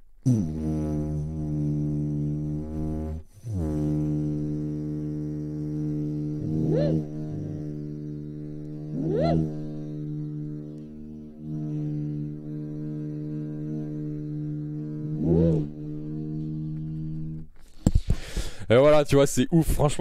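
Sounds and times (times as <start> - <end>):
didgeridoo low drone: 0.3 - 17.5
didgeridoo rising whoops: 6.4 - 17.5.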